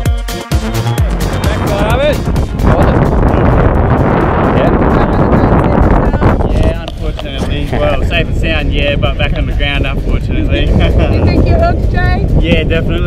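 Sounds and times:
background music: 0:00.0 - 0:13.0
wind buffeting microphone: 0:01.4 - 0:13.0.

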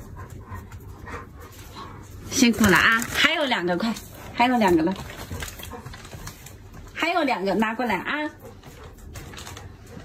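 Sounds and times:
dog claws clicking on tile floor: 0:00.2 - 0:07.1, 0:08.5 - 0:10.0.

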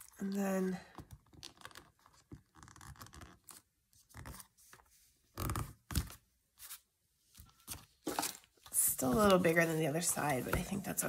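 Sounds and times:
paper rustling and scraping: 0:06.0 - 0:11.0.

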